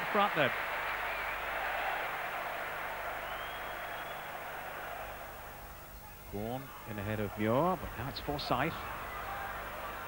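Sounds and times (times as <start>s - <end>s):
football stadium crowd noise: 0.0s - 10.0s.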